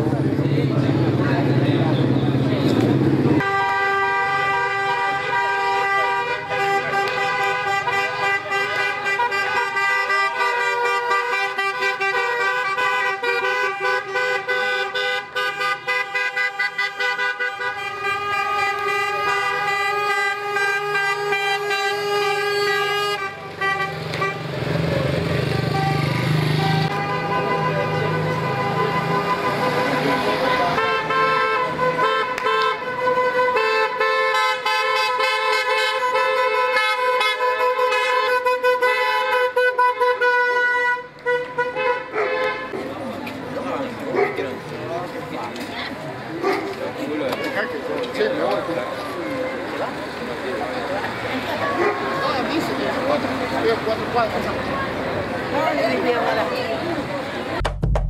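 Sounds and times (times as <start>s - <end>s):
car engines: 0.0s - 57.7s
car horns blasting: 3.3s - 42.8s.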